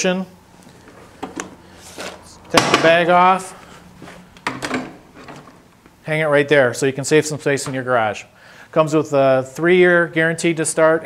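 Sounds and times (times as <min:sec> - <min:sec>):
lawn mower parts rattling: 0:04.4 - 0:05.7.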